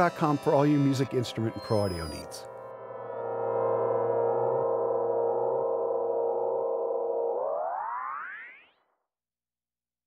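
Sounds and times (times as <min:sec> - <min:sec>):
held synthesizer chord: 0:00.0 - 0:08.5.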